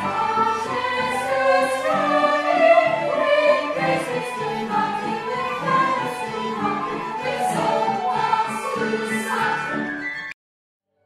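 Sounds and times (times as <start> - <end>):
choir singing operatic harmony: 0.0 - 10.4.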